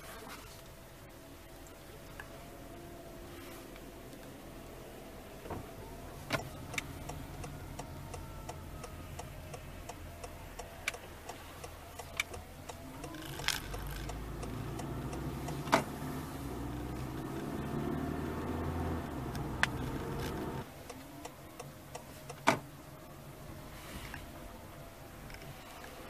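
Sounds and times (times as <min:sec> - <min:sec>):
car running hum with whine: 0:00.0 - 0:26.0.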